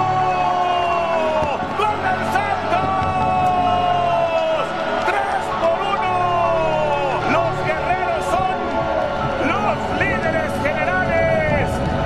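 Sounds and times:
steady background din: 0.0 - 12.0.

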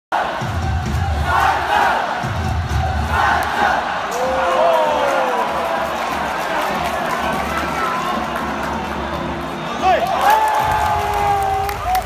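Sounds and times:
crowd cheering and chanting: 0.1 - 12.0
deep pounding beat: 0.2 - 4.0.

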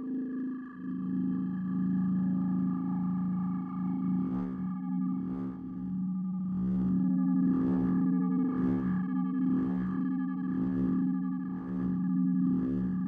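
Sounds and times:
pulsing synth drone: 0.0 - 13.0.

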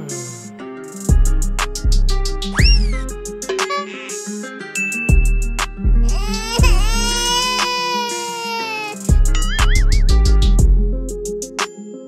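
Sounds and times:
music with deep bass: 0.0 - 4.3, 5.1 - 7.8, 9.0 - 11.6
long wailing cry: 6.1 - 9.1.

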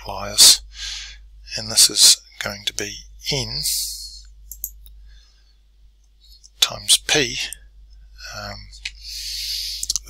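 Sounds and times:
faint low hum: 0.0 - 10.0
computer mouse clicking: 9.8 - 10.0.

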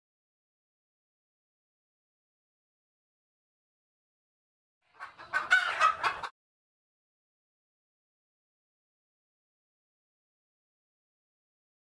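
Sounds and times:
chicken calling: 4.9 - 6.3.

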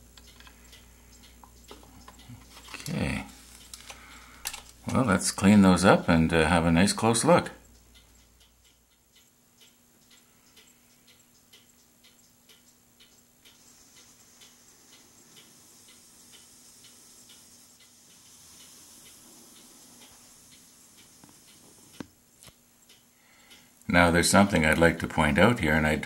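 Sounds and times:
low steady hum: 0.0 - 26.0
soft regular ticking: 0.0 - 26.0.

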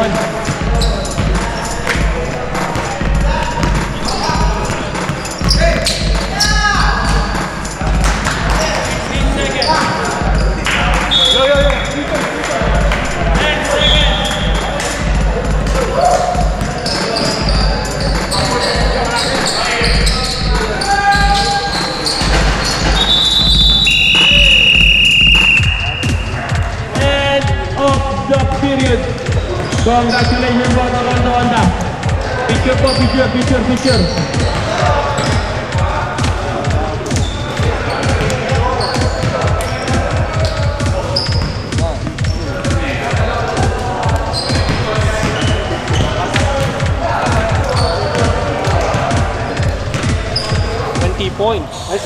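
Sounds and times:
players calling out: 0.0 - 52.0
shoe squeaks: 0.6 - 7.5, 8.5 - 12.0, 13.7 - 14.6, 16.1 - 26.4, 29.3 - 30.8, 32.2 - 35.6, 37.1 - 42.8, 44.2 - 48.4, 49.9 - 51.2
basketball bouncing on wooden floor: 0.6 - 11.8, 38.0 - 40.1.

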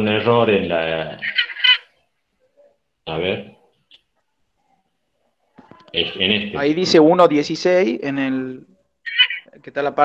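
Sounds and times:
man's voice over video call: 0.0 - 1.4, 3.0 - 3.7, 5.9 - 8.8, 9.5 - 10.0.

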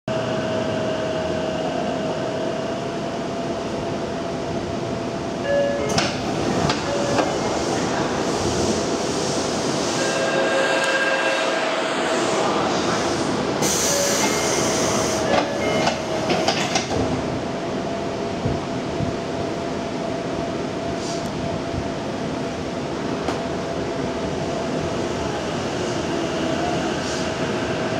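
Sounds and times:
subway car equipment humming: 0.1 - 27.9
air hiss burst: 12.1 - 15.2.

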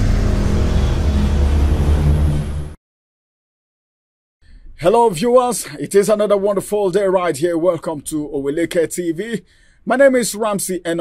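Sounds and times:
deep rumble: 0.0 - 2.8.

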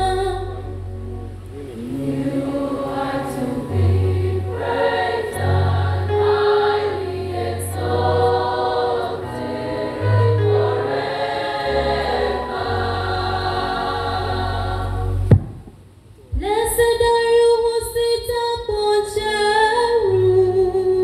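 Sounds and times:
sustained low bass notes: 0.0 - 4.7, 7.0 - 15.7
church choir singing: 1.5 - 15.3.

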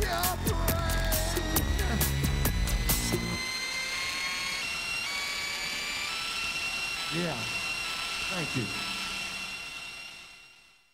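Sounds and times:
electronic music with heavy bass: 0.0 - 3.4.

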